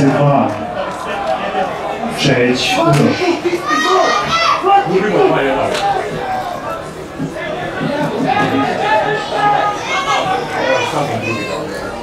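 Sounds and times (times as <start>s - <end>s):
voices shouting excitedly: 0.6s - 12.0s.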